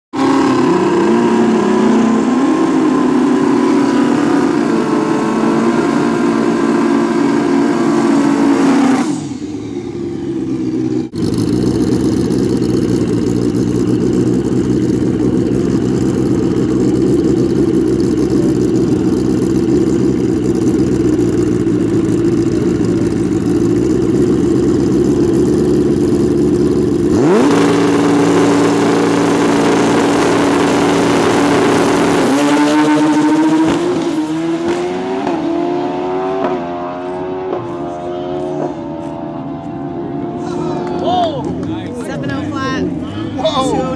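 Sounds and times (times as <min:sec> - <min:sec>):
motorcycle engines revving: 0:00.1 - 0:43.9.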